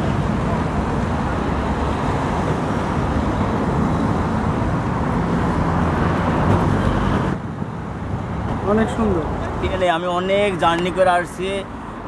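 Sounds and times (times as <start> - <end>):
man speaking: 8.6 - 11.7.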